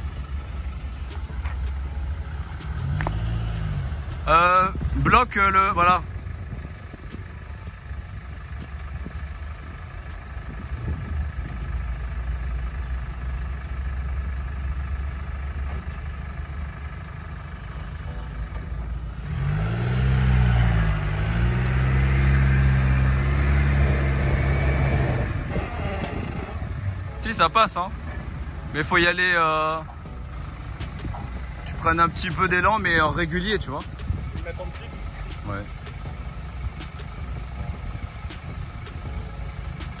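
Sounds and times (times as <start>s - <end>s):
engine revving under load: 0.0s - 7.4s, 17.8s - 27.2s.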